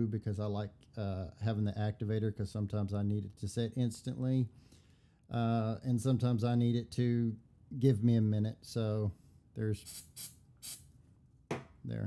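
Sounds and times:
aerosol spray hisses: 9.9s - 10.9s.

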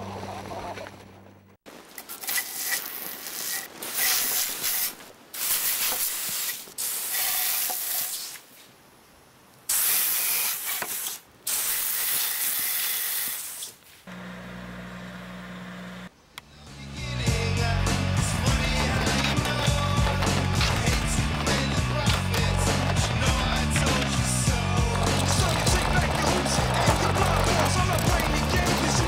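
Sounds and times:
water spray hissing: 2.1s - 8.5s, 9.7s - 13.8s.

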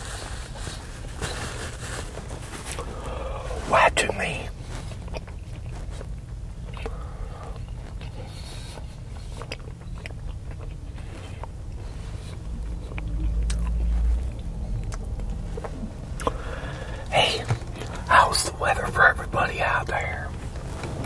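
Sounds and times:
steady low rumble: 0.0s - 21.0s
close chewing: 4.6s - 21.0s.

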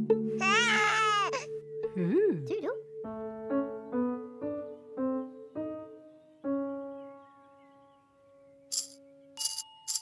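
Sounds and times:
toy baby rattle shaken: 8.7s - 10.0s.

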